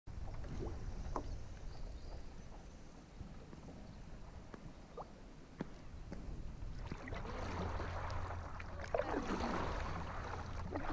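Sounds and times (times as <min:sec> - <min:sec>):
wind rumble on microphone: 0:00.1 - 0:10.9.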